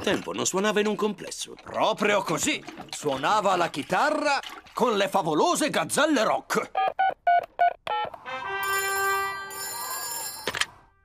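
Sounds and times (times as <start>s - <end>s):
electronic telephone ring: 7.9s - 10.7s.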